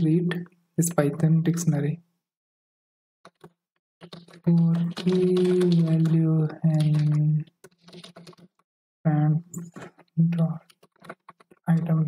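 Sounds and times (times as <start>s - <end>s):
keyboard keystrokes: 3.2s - 8.6s, 9.6s - 11.9s.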